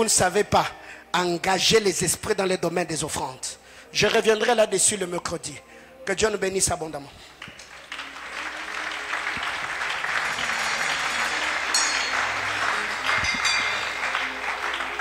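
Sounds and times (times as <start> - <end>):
congregation applauding: 7.3 - 15.0.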